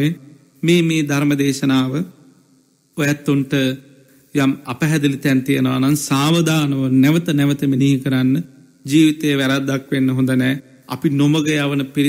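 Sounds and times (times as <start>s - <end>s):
man speaking: 0.0s - 2.2s, 3.0s - 12.0s.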